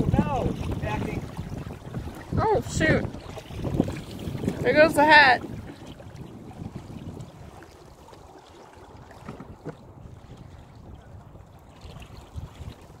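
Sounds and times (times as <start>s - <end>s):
water lapping against hull: 0.0s - 13.0s
wind buffeting microphone: 0.0s - 13.0s.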